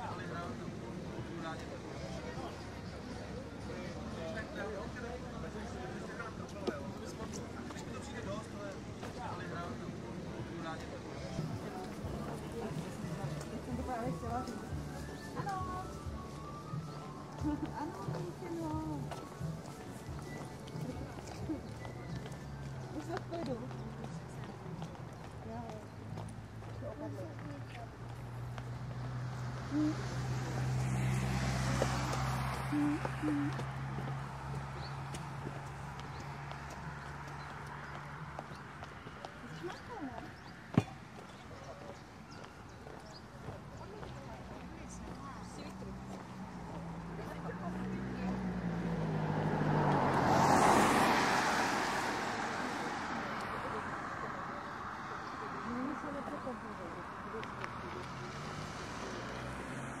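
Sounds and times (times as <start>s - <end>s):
street noise: 0.0s - 60.0s
minivan driving past: 27.8s - 38.8s, 44.3s - 60.0s.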